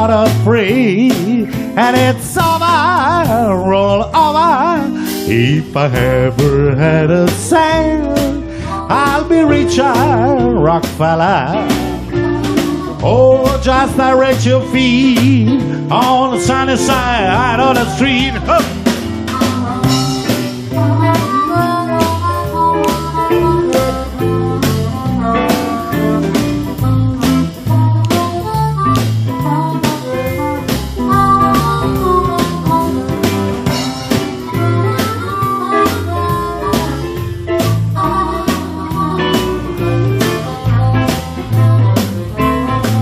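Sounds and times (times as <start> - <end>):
bass notes: 0.0 - 43.0
drum kit beat: 0.0 - 43.0
electric guitar melody: 0.0 - 43.0.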